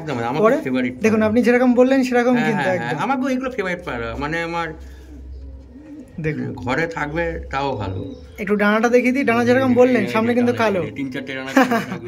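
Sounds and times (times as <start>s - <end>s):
pigeon cooing: 2.3s - 12.0s.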